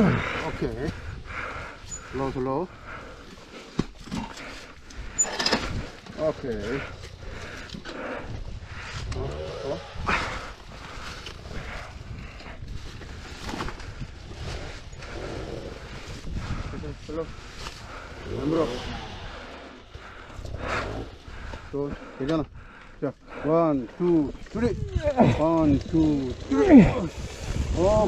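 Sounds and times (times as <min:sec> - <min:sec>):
dirt bike engine revving: 0:17.9 - 0:21.2
wheel spinning in loose dirt: 0:24.5 - 0:28.0.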